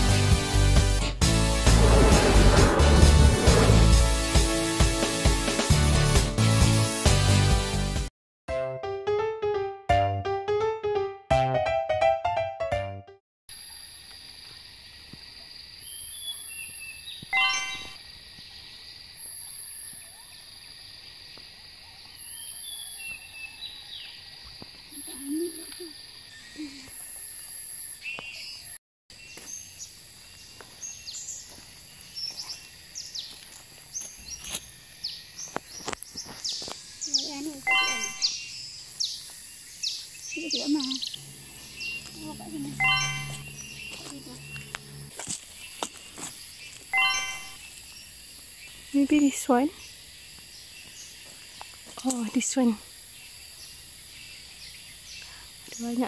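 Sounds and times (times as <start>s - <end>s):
birds chirping: 28.1s - 56.0s
insect buzz: 29.8s - 56.0s
steady high whine: 41.2s - 45.2s.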